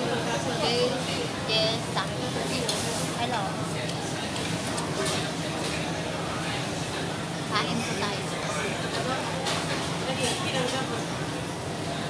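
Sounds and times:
diners chattering: 0.0 - 12.0.

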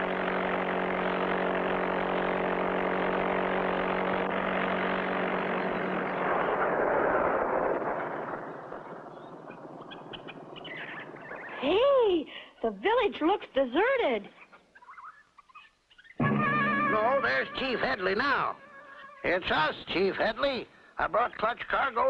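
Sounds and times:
faint bird chirps: 8.4 - 11.9, 14.3 - 17.8.

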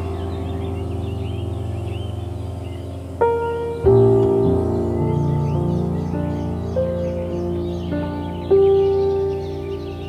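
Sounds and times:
soft piano music: 0.0 - 10.0
songbirds chirping: 0.0 - 10.0.

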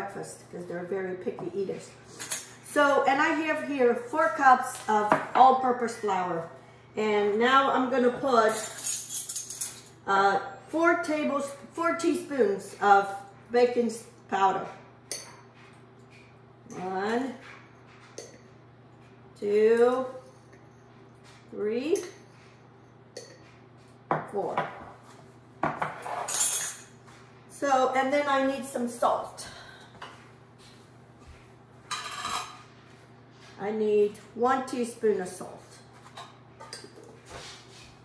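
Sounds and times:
kitchenware clinking and rattling: 8.4 - 10.0, 25.6 - 26.9, 31.9 - 32.7.

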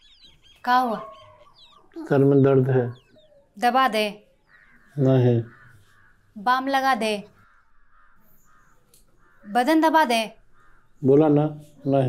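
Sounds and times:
person speaking: 2.0 - 3.0.

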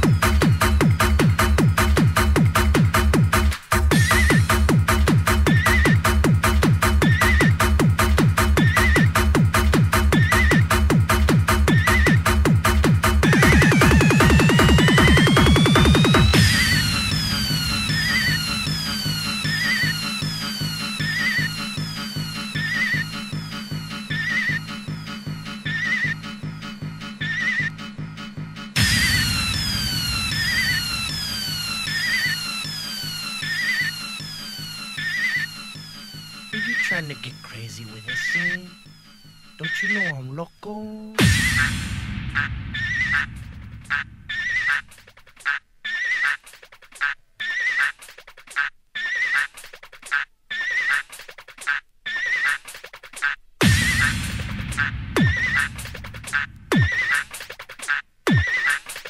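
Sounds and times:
kick drum and bass: 0.0 - 32.8, 41.2 - 44.6, 53.6 - 57.1
falling synth sweeps: 28.8 - 36.6
high wavering sample: 28.8 - 37.2.

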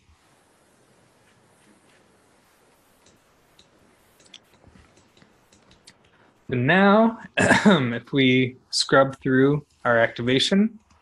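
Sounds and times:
computer mouse clicks: 3.0 - 6.2.

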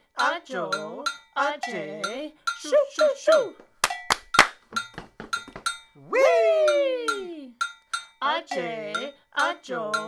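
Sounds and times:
foot stomps: 3.6 - 5.9
hand claps: 3.8 - 5.7.

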